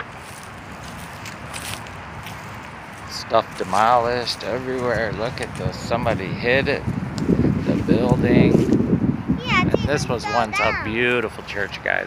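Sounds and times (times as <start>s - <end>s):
footsteps on grass and dirt: 0.0s - 8.9s
soft rustles: 0.1s - 5.9s.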